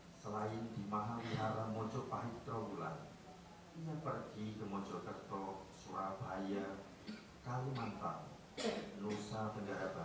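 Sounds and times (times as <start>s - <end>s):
man speaking into microphone: 0.2s - 3.2s, 4.0s - 10.0s.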